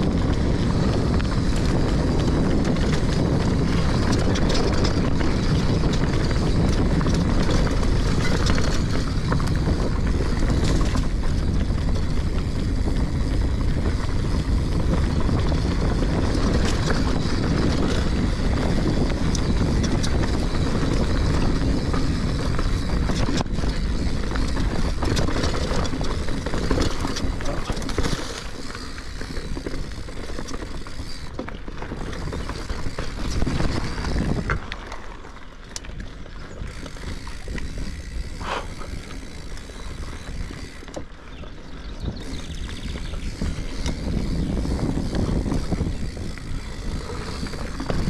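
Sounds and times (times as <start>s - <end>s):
wind on microphone: 0.0s - 35.0s, 35.9s - 48.0s
bike clicks and rattles: 0.0s - 48.0s
bike tyres rumbling on dirt trail: 0.0s - 48.0s.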